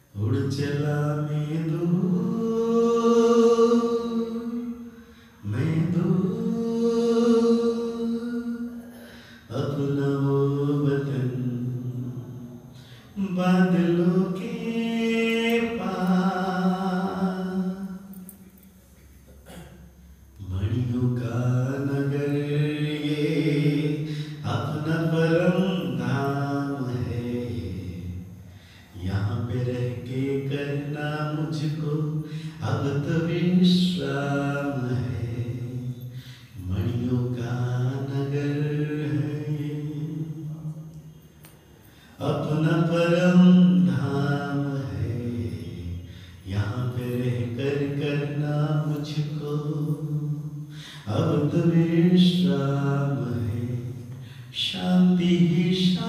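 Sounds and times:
man chanting into microphone: 0.0s - 8.8s, 9.4s - 18.3s, 20.4s - 41.0s, 42.2s - 56.0s.

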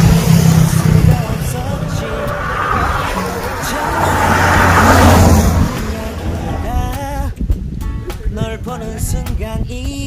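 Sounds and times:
small truck engine passing: 0.0s - 7.3s.

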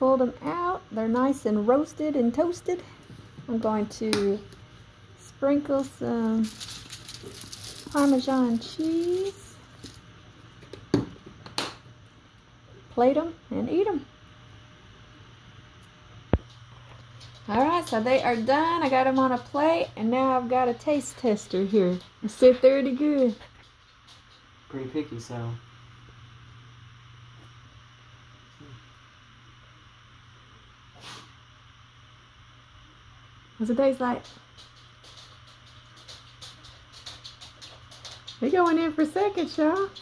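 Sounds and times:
steady low hum: 0.0s - 40.0s
shaker container shaking: 6.4s - 10.0s, 34.2s - 40.0s
person sniffing: 30.9s - 31.4s.

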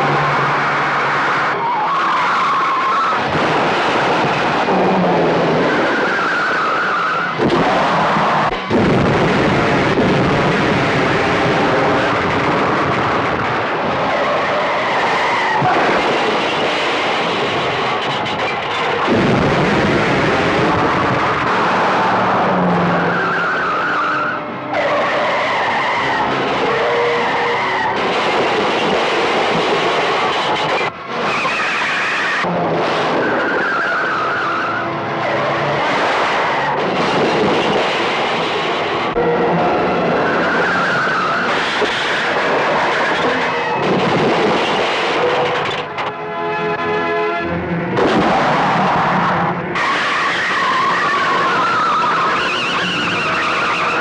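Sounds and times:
tyres skidding and squealing: 0.0s - 54.0s
vehicle engines running hard: 0.0s - 54.0s
background music score: 44.9s - 49.8s.

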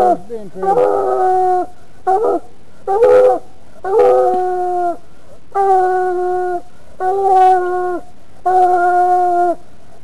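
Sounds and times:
dog howling: 0.0s - 5.0s.

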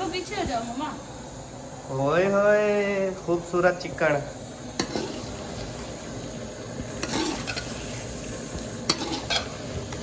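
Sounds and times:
chicken sizzling in pot: 0.0s - 10.0s
ladle scraping pot: 4.7s - 5.9s, 6.8s - 10.0s.

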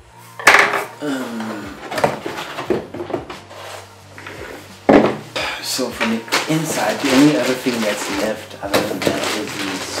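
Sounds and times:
cardboard scraping against cardboard: 3.4s - 4.7s.

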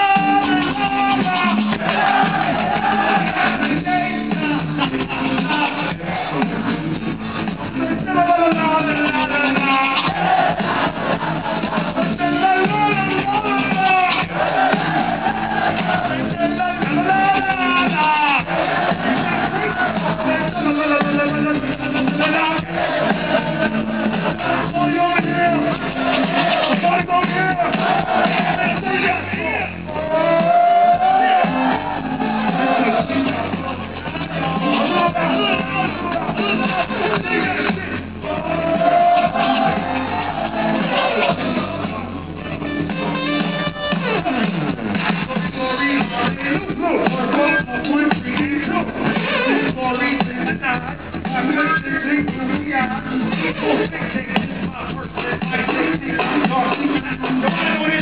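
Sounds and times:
vocalists rapping on microphones: 0.0s - 42.9s, 43.6s - 58.0s
live band with drums: 0.0s - 58.0s.

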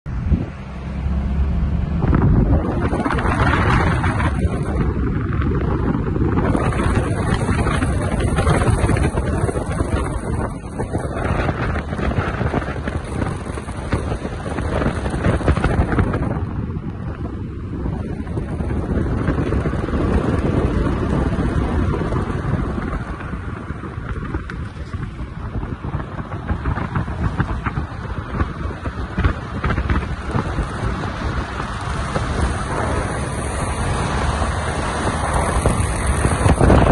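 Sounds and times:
car tyres and engine rumble: 0.0s - 36.9s
wind buffeting microphone: 0.1s - 36.9s.

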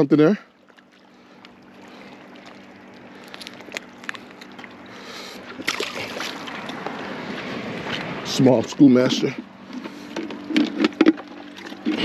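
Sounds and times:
water splashing against rocks: 5.5s - 8.2s.

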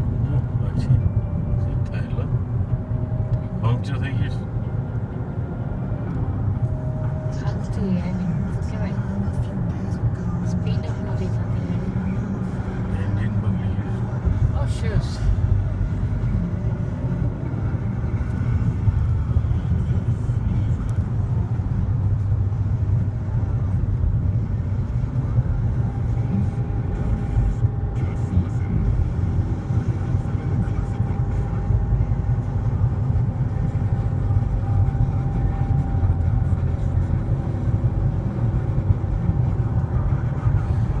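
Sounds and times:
car cabin road and engine rumble: 0.0s - 41.0s.

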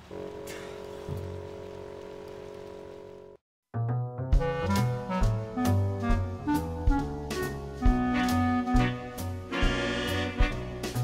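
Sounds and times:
rain-like hiss: 0.0s - 3.4s.

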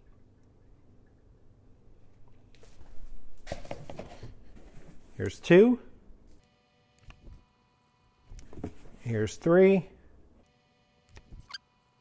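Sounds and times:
brief high squeak: 11.3s - 11.6s.

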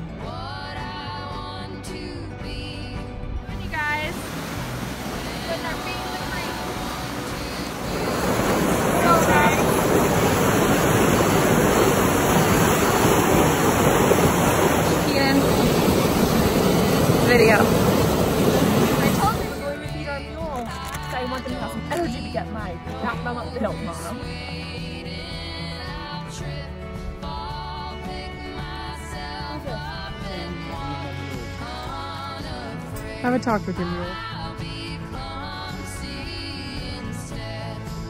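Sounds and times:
background music with voice: 0.0s - 38.0s
stream rushing over rocks: 3.6s - 19.8s.

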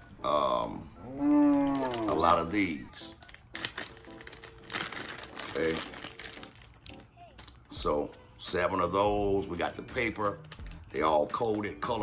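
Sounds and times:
wrapping crinkling and rustling: 0.6s - 8.5s, 9.3s - 12.0s.

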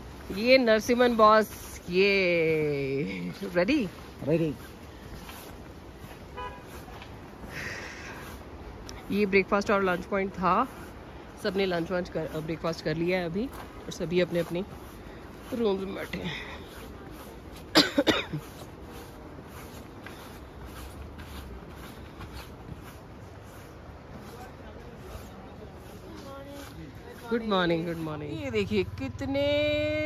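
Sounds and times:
low background rush: 0.0s - 30.0s
vehicle horn toot: 6.3s - 6.8s
person coughing: 17.7s - 18.5s.

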